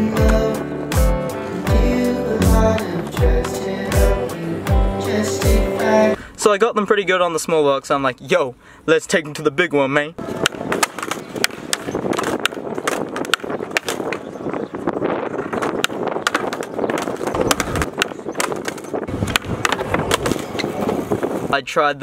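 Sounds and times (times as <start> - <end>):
skateboard wheels rolling on concrete: 0.0 - 6.2, 10.2 - 21.8
skateboard clacks and knocks: 10.4 - 14.3, 15.3 - 21.1.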